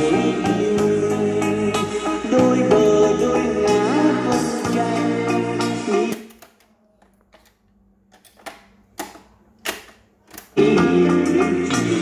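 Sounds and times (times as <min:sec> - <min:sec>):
boombox music: 0:00.0 - 0:06.4, 0:10.5 - 0:12.0.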